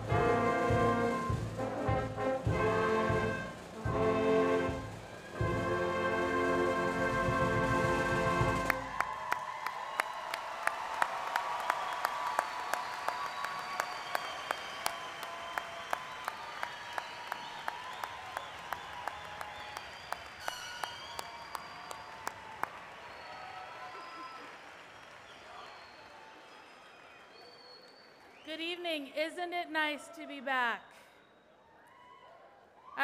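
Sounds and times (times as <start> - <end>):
large crowd applauding: 4.3 - 28.5
nearby hands clapping: 8.7 - 26.6.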